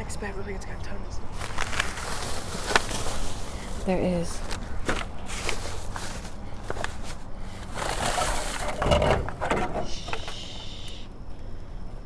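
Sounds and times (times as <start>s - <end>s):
plastic bags crinkling: 1.4s - 9.0s.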